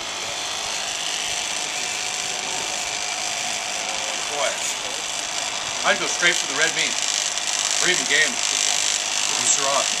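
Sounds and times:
heat gun whirring: 0.0 - 10.0.

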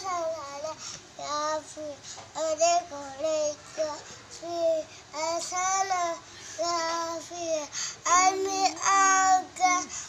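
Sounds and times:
boy singing unaccompanied: 0.0 - 10.0.

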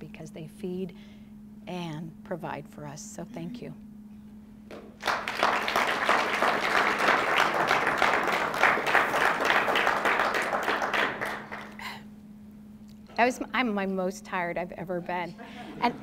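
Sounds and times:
audience applauding: 4.7 - 12.0.

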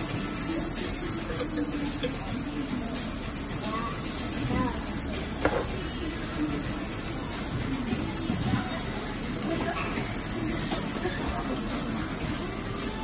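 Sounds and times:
faint voices: 0.0 - 13.0
meat sizzling on a grill: 0.0 - 13.0.

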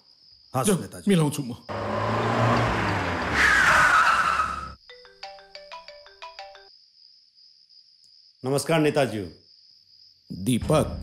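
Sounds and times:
car driving off: 1.7 - 4.8
tyre squeal: 1.7 - 4.8
phone ringtone beeping melody: 4.8 - 6.7.

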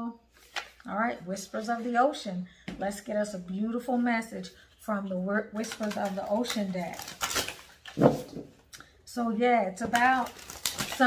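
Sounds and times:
cards rustling and sliding: 0.3 - 0.9, 9.9 - 11.0.

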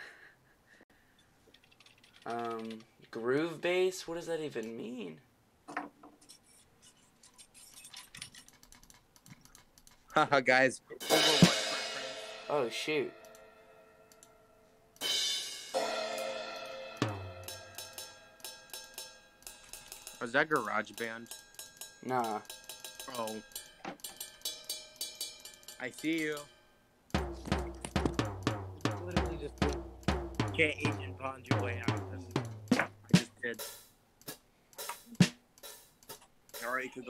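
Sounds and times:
computer mouse and keyboard clicking: 1.5 - 3.1, 7.2 - 10.1
drum sample hits: 11.0 - 13.3, 15.0 - 18.3, 27.2 - 33.8.

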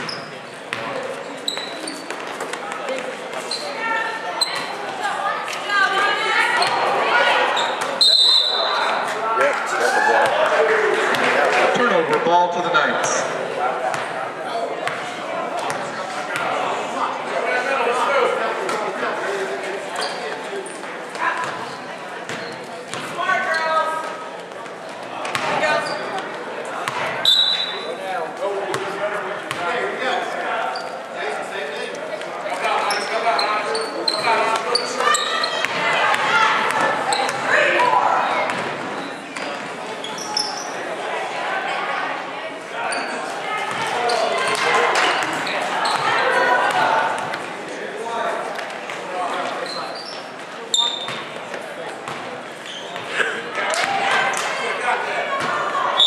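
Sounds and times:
sneaker squeaks: 0.0 - 5.0, 6.5 - 8.9, 20.0 - 24.2, 25.3 - 28.0, 29.5 - 31.0, 32.8 - 35.8, 36.7 - 37.6, 38.5 - 40.8, 42.9 - 46.2, 49.3 - 51.4, 52.1 - 53.1, 55.4 - 56.0.

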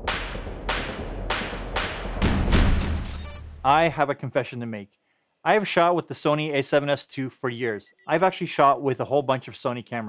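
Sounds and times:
sharp whip-like hits: 0.0 - 3.0.

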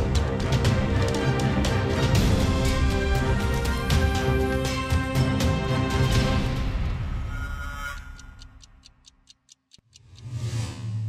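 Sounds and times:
tv title theme music: 0.0 - 9.2
clock ticking: 3.6 - 11.0.

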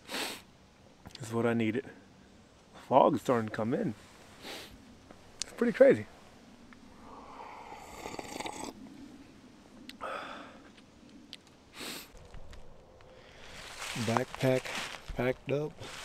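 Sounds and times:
man breathing out and sniffing: 0.0 - 0.5, 4.4 - 4.8, 11.7 - 12.2
man slurping coffee: 7.2 - 8.9.

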